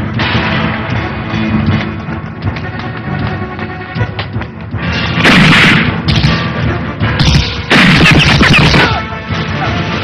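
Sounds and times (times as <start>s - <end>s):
rock electric guitar film score: 0.0s - 10.0s.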